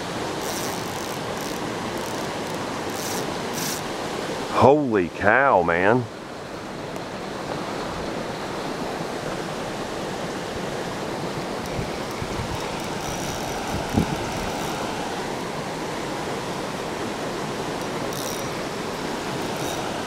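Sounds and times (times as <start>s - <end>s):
creek water rushing over rapid: 0.0s - 20.0s.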